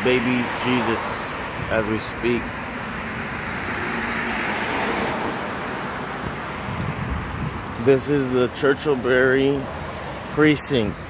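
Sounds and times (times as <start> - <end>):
car passing: 0.0 - 10.4.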